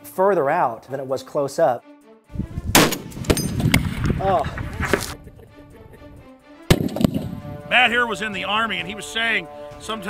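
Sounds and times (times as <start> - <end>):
rifle shot with rumbling echo: 2.7 - 4.2, 6.7 - 7.5.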